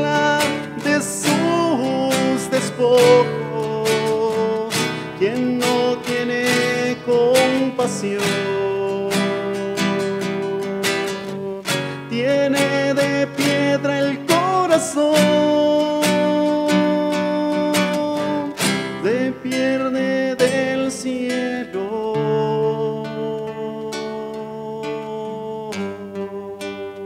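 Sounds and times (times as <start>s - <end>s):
man singing slow song: 0.0s - 27.0s
strummed nylon-string guitar: 0.0s - 27.0s.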